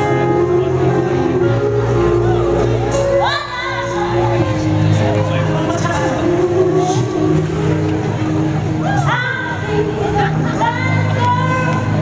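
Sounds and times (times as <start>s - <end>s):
live band playing sustained chords: 0.0s - 12.0s.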